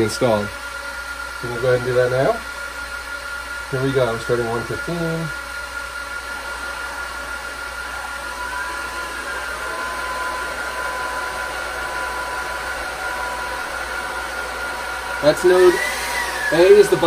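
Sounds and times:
fan whine rising in pitch: 0.0s - 17.0s
server cooling fans rushing: 0.0s - 17.0s
steady fan tone: 0.0s - 17.0s.

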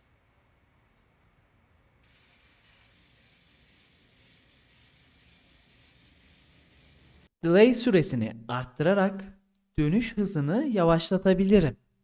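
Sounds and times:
small servo motor whirring: 2.0s - 7.3s.

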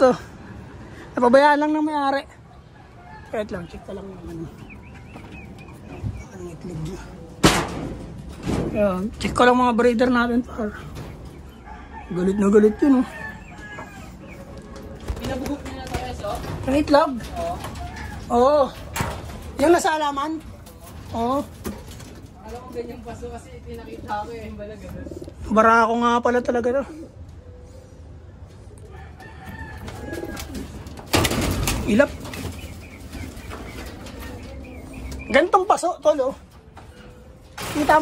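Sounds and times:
pigeons cooing: 2.4s - 7.4s, 9.7s - 38.0s.

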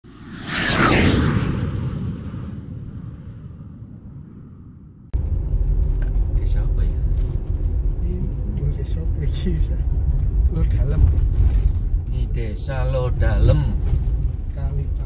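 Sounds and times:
cinematic whoosh and boom: 0.0s - 8.2s
vehicle driving rumble: 5.1s - 15.0s.

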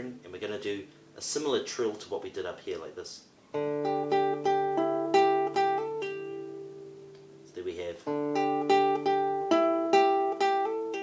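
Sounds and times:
nylon-string guitar plucked: 3.5s - 11.0s.

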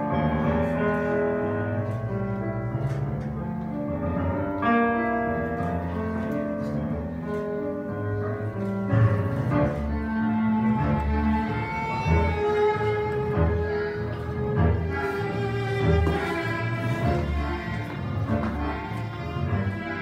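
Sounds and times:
tango music with strings and piano: 0.0s - 20.0s.

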